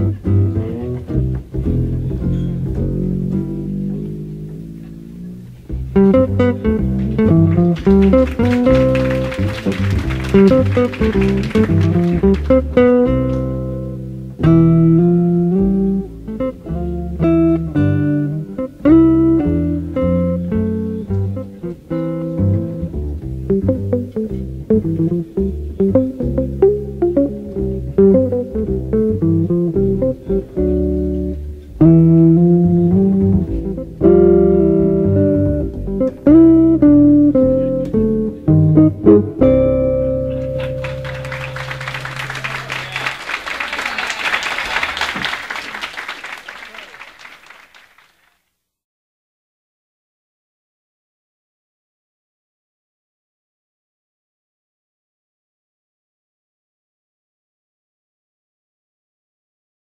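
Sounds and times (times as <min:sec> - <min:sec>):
double bass: 0:00.0 - 0:42.5
jazz guitar: 0:00.0 - 0:42.8
audience applause: 0:06.8 - 0:12.8, 0:40.3 - 0:48.4.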